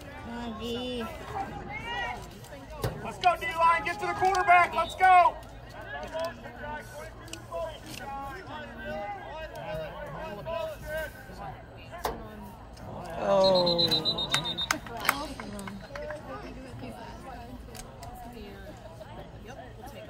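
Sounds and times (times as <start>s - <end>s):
players and spectators voices: 0.0s - 20.0s
referee's whistle: 13.3s - 14.9s.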